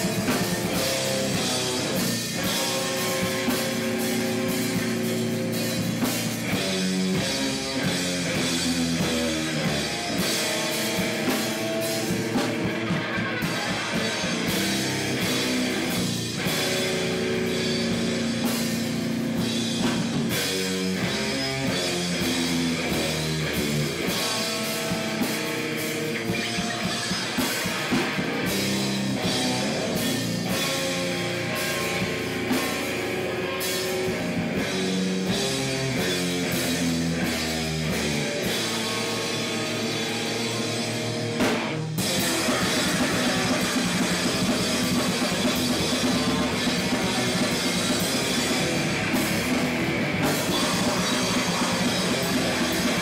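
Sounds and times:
distorted electric guitar riffs: 0.0s - 53.0s
drum kit beats: 0.0s - 53.0s.

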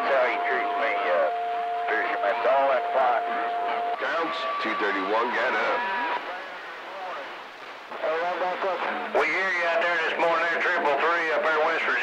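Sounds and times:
voice over radio: 0.0s - 1.3s, 1.9s - 12.0s
radio band noise and hiss: 0.0s - 12.0s.

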